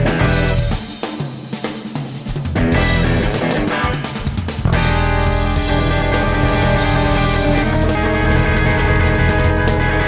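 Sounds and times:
blues rock band playing: 0:00.0 - 0:10.0
drum fills: 0:00.0 - 0:10.0.

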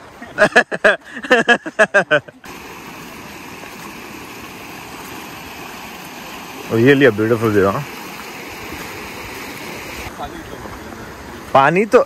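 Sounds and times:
river rushing over stones: 0:02.4 - 0:12.0.

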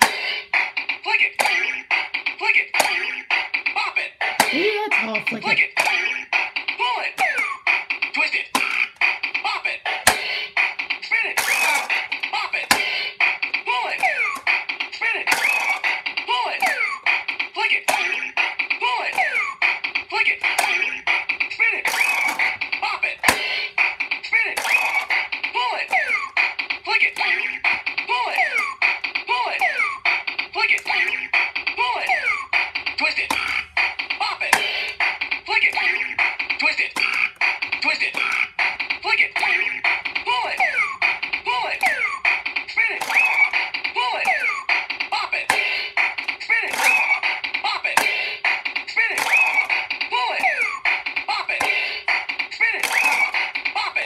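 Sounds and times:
electronic toy beat with clicks: 0:00.0 - 0:54.0
recorded voice calling commands: 0:04.4 - 0:05.8.

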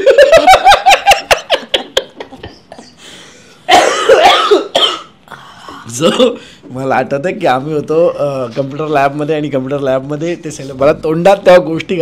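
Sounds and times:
person laughing and coughing: 0:03.7 - 0:06.4.

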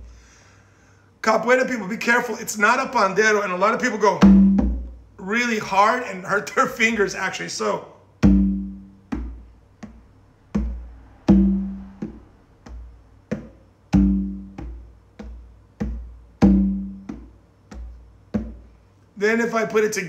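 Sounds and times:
conga drum struck by hand: 0:04.2 - 0:05.0, 0:08.2 - 0:18.7.

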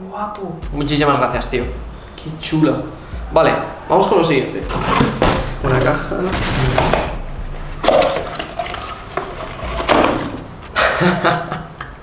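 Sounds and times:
cardboard boxes rustling and scraping: 0:04.7 - 0:05.4, 0:07.9 - 0:10.4.

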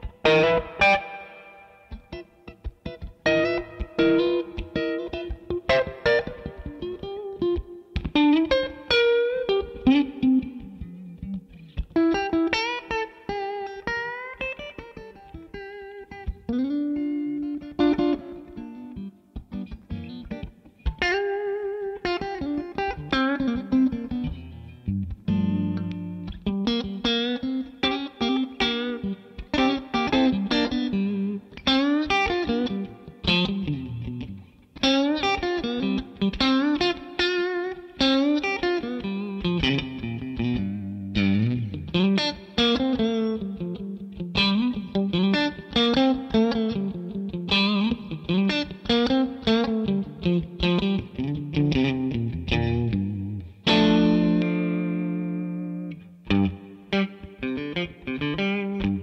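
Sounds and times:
electric guitar blues-rock lead: 0:00.0 - 0:59.0.

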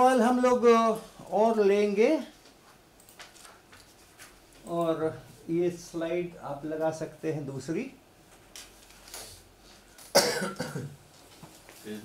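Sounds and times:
person coughing: 0:10.1 - 0:11.0.

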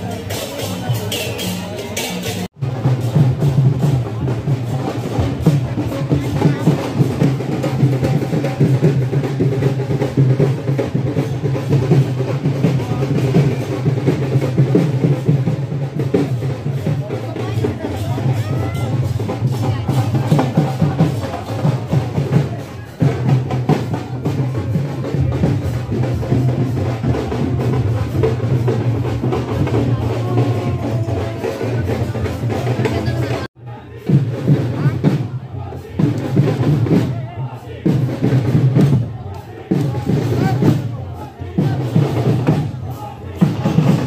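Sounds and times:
crowd voices: 0:00.0 - 0:44.0
drum-heavy music: 0:00.0 - 0:44.0.

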